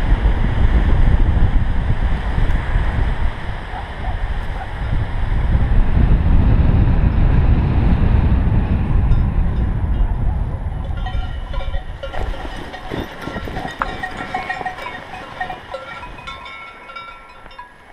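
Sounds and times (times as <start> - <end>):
wind buffeting microphone: 0.0 - 17.9
cowbells ringing: 10.8 - 17.9.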